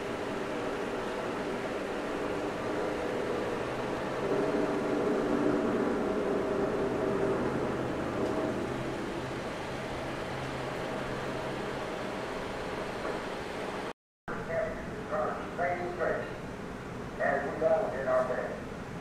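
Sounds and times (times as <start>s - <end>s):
room hum with hiss: 0.0s - 19.0s.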